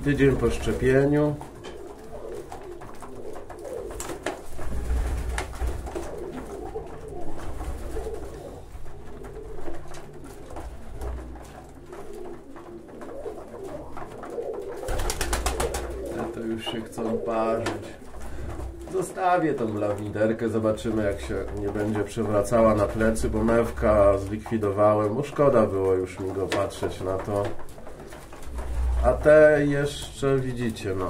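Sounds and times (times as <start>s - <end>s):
pigeons cooing: 0.0s - 31.0s
rapid clicking: 0.0s - 31.0s.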